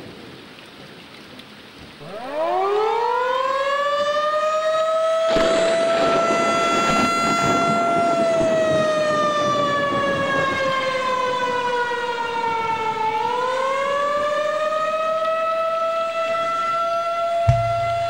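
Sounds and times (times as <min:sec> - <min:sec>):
tornado warning siren: 0:01.9 - 0:18.0.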